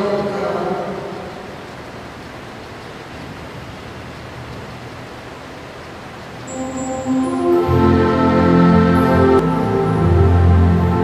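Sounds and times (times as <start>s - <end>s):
background hiss: 0.0s - 11.0s
music: 6.5s - 11.0s.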